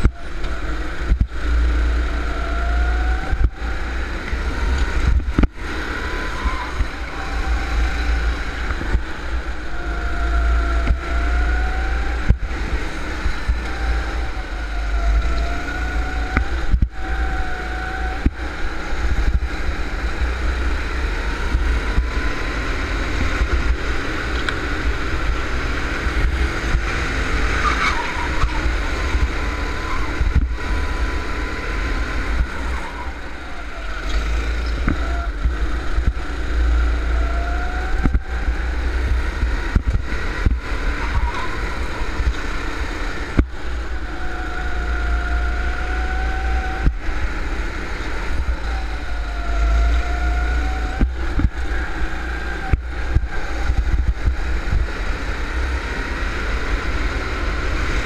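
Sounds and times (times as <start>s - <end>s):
go-kart engine revving: 0.0s - 58.0s
wind rumble on microphone: 0.0s - 58.0s.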